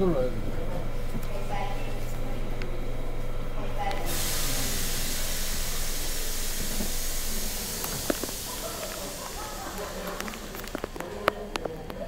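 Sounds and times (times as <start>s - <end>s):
subway train rushing noise: 0.0s - 12.0s.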